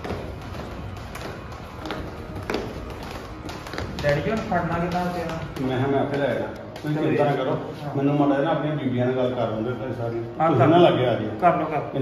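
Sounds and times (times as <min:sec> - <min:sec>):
footsteps on stairs and hard floor: 0:00.0 - 0:07.6.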